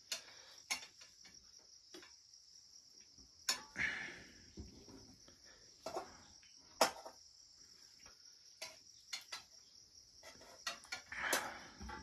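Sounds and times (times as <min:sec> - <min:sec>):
crickets chirring: 0:00.0 - 0:12.0
utensil clinking on a pan: 0:03.5 - 0:03.8.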